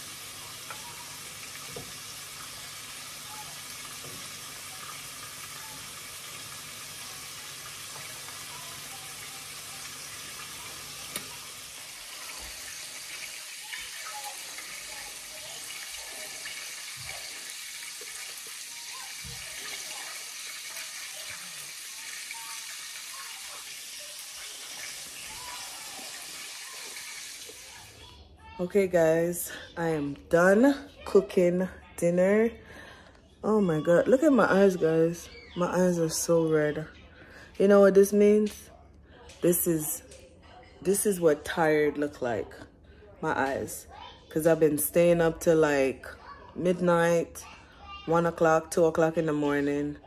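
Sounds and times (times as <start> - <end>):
fritters sizzling in oil: 0.0 - 28.0.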